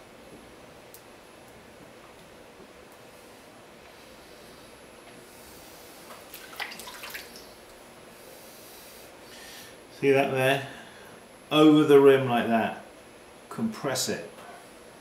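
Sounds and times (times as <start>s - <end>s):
faint steady hiss: 0.0s - 15.0s.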